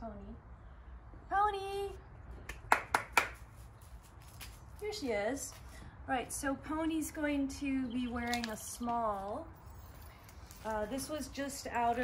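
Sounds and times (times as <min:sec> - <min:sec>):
sharp hand claps: 0:02.5 - 0:03.5.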